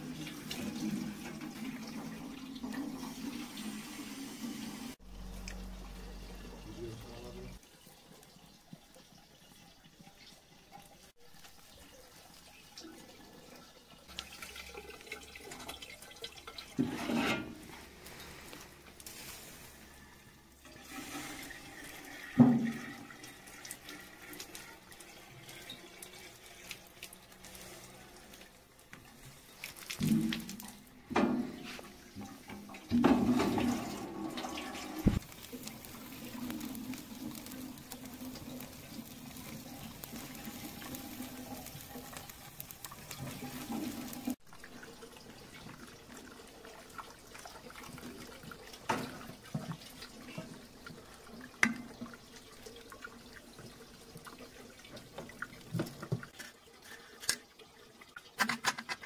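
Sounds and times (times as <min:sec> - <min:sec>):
water splashing into metal tin: 0:29.5 - 0:59.0.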